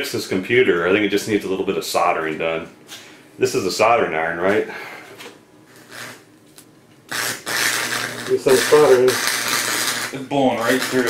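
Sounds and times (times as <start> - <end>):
arc welder hissing: 5.6 - 11.0.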